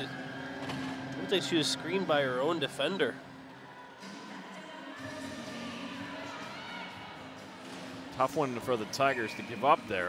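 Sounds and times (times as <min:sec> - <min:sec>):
faint music over sound system: 0:00.0 - 0:10.0.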